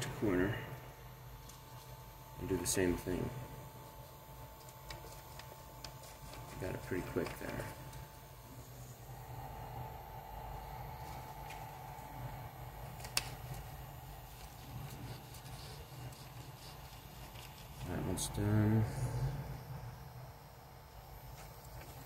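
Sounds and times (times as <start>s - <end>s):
printer cooling fans humming: 0.0s - 22.0s.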